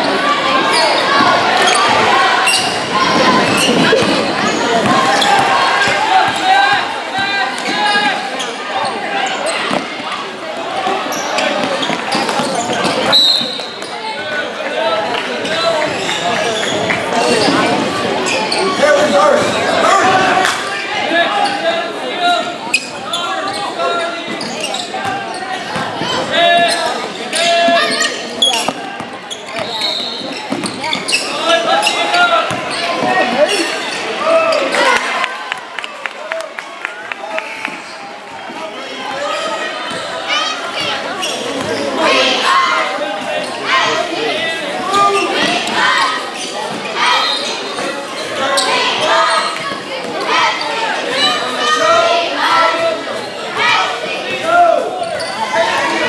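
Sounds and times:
echoing voices in gym: 0:00.0 - 0:56.0.

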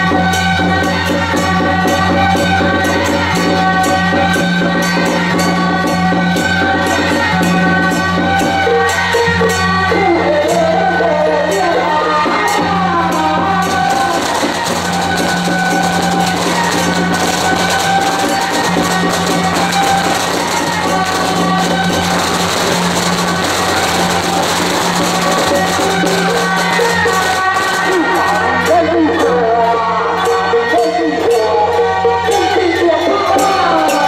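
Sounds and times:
drum strikes: 0:00.0 - 0:31.4
sustained melody over loudspeaker: 0:00.0 - 0:34.0
cymbal strikes: 0:12.5 - 0:29.0.

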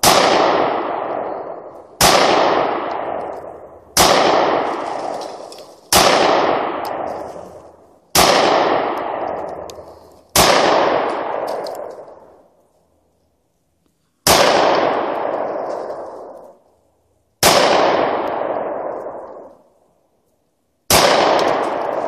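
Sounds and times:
gunshots echoing through woods: 0:00.0 - 0:12.6, 0:14.2 - 0:22.0.

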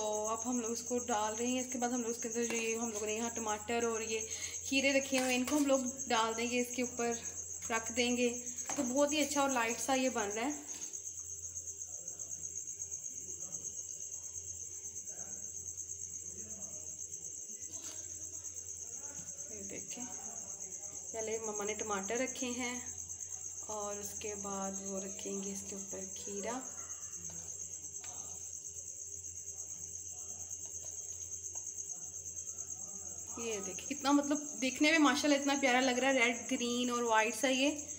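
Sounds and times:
crickets chirping: 0:00.0 - 0:37.9
pulsing insect trill: 0:00.0 - 0:37.9.

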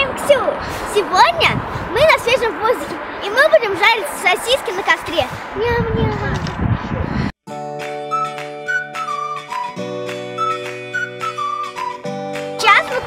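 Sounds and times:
outdoor noise: 0:00.0 - 0:07.4
flute-like melody over chords: 0:07.5 - 0:13.0.

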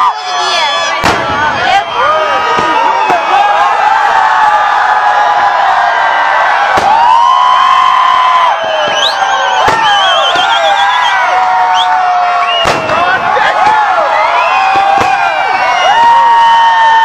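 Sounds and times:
crowd of overlapping voices: 0:00.0 - 0:07.0
fireworks bangs: 0:00.4 - 0:03.6, 0:06.6 - 0:17.0
whistles: 0:00.9 - 0:03.4, 0:08.2 - 0:13.1, 0:14.1 - 0:17.0.

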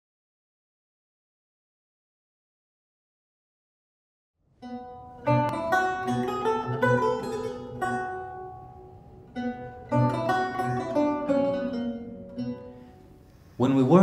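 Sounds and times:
plucked lute: 0:04.6 - 0:14.0.

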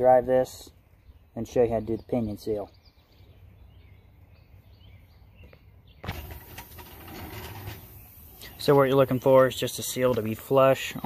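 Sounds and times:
steady hiss: 0:06.1 - 0:10.6.

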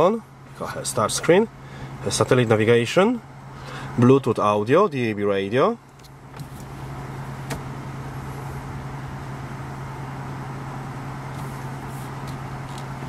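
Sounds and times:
car engine idling: 0:00.0 - 0:13.0.

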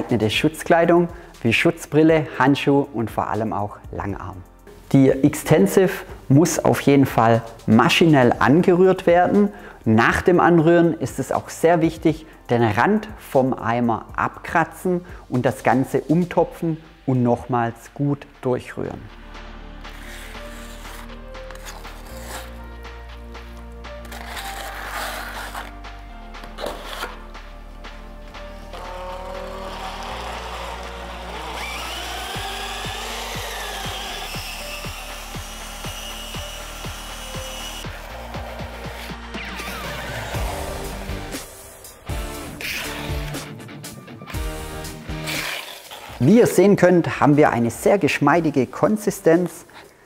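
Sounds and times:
background music: 0:00.0 - 0:50.0
electric drill mixing in bucket: 0:28.3 - 0:41.5, 0:44.3 - 0:46.3.

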